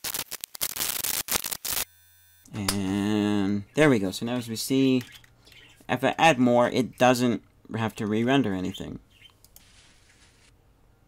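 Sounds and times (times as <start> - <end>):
loud static hiss: 0.0 - 1.9.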